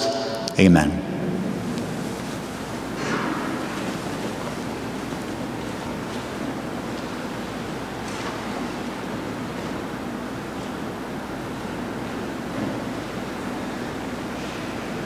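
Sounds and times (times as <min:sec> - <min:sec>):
room noise hiss: 0:00.0 - 0:15.0.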